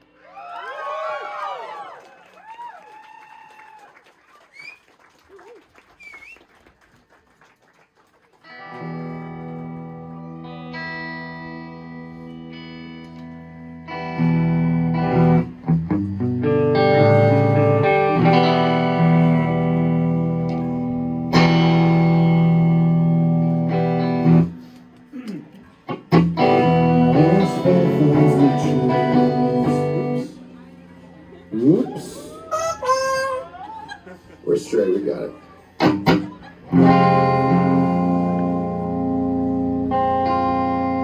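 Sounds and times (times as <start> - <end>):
rock band playing live: 8.6 - 24.8, 25.9 - 30.5, 35.8 - 41.0.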